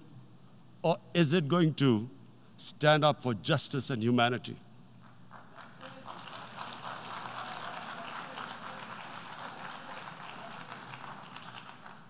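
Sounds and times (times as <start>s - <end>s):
audience applauding: 5.3s - 12.0s.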